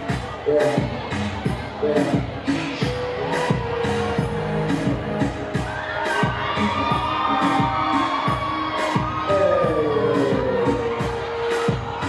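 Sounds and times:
audience noise: 0.0s - 12.0s.

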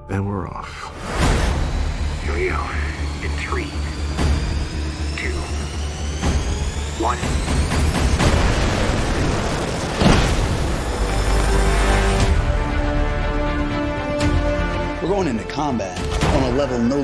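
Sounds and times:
soundtrack music: 0.0s - 17.0s
jet engines spooling up: 1.0s - 12.4s
loud boom: 7.9s - 12.3s.

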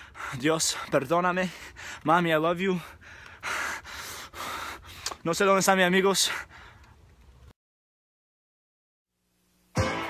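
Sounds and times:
man breathing hard: 0.0s - 2.1s, 2.7s - 5.2s, 6.2s - 7.0s.

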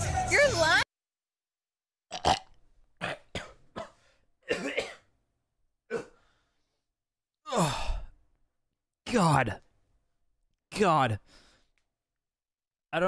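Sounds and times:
man gagging and retching: 2.1s - 5.0s.

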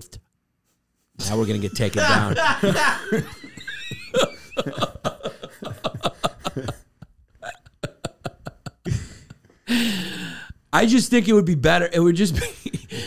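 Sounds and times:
man laughing hard: 1.3s - 9.4s
man drawing loud breath: 8.9s - 10.6s.

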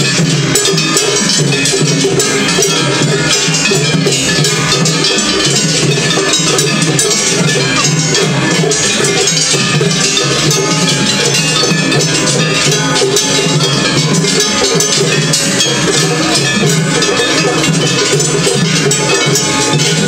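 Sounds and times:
hand gongs clanging: 0.0s - 20.0s
taiko drums: 0.0s - 20.0s.

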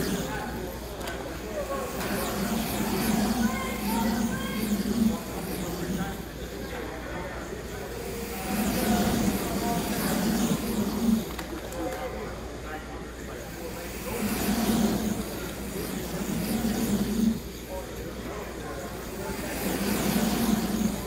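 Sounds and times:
slot cars whirring: 0.0s - 21.0s
spectators chatting: 0.0s - 21.0s.

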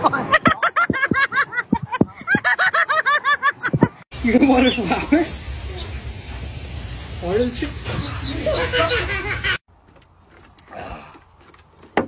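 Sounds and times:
water hissing from hose: 4.2s - 9.6s.

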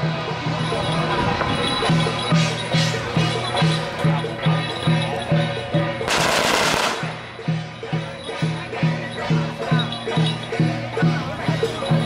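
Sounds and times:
rhythmic procession music: 0.0s - 12.0s
firecrackers crackling: 6.1s - 7.2s.

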